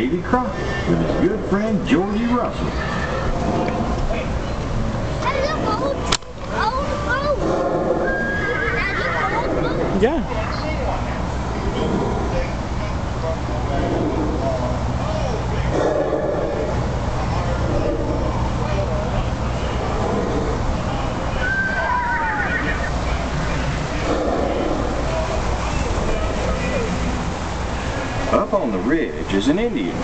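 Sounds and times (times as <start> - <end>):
boat engine rumble: 0.0 - 30.0
voices: 0.0 - 30.0
horse whinnying: 8.0 - 9.2, 21.4 - 22.9.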